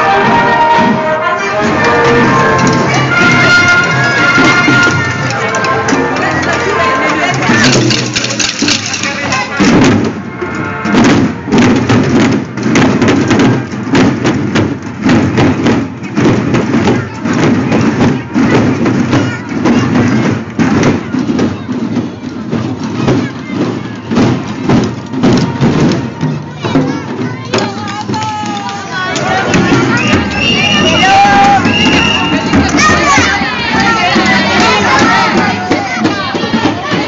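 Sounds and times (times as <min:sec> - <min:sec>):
wind instrument tune: 0:00.0 - 0:12.0, 0:23.8 - 0:37.0
group playing stick-beaten drums: 0:00.0 - 0:37.0.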